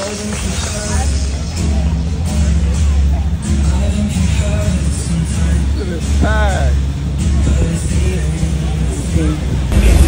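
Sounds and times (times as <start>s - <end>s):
crowd voices: 0.0s - 10.0s
loud music bass rumble: 0.0s - 10.0s
traffic: 0.0s - 10.0s.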